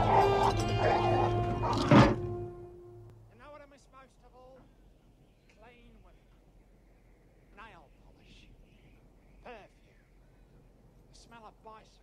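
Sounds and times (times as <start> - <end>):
dog barking and yipping: 0.0 - 2.5
orchestral music with low drone: 0.0 - 3.1.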